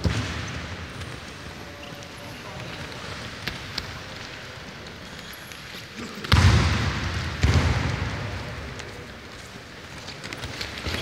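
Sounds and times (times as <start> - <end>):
echoing gym hall noise: 0.0 - 11.0.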